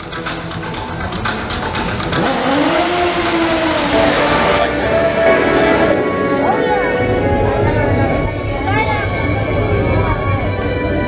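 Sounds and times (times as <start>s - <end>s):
loud noisy background: 0.0s - 11.0s
motorcycle engine revving: 0.9s - 6.0s.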